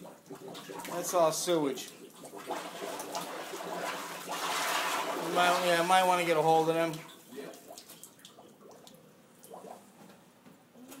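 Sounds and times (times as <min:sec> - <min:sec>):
water dripping and trickling: 0:00.0 - 0:09.9.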